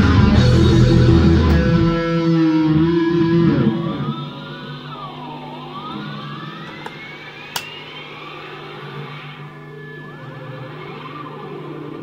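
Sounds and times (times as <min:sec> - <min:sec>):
low held guitar notes: 0:00.0 - 0:04.4
electric guitar gliding tone: 0:00.0 - 0:07.6.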